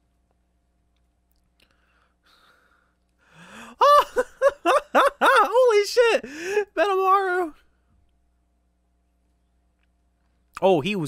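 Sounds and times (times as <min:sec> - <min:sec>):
man gasping and laughing: 0:02.3 - 0:06.8.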